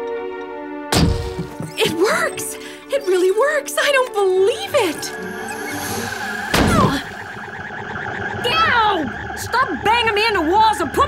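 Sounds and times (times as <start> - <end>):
cartoon body slam hit: 0.9 - 1.6, 6.5 - 7.1
eerie warbling drone: 2.4 - 11.0.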